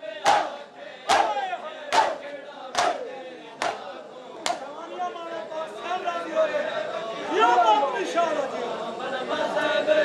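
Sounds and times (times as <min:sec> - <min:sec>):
crowd shouting: 0:00.0 - 0:05.3
men striking their chests: 0:00.2 - 0:03.0, 0:03.6 - 0:04.7.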